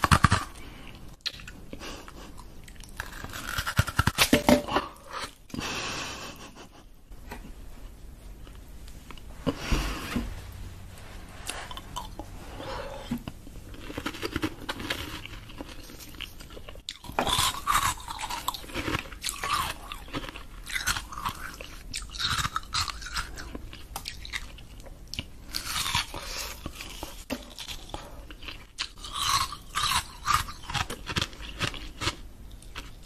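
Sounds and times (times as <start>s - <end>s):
teeth crunching ice: 13.7s - 33.0s.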